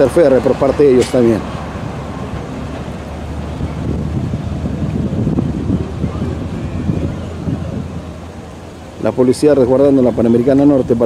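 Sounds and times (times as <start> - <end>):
steady low rumble: 0.2 - 10.1
wind on microphone: 1.6 - 9.0.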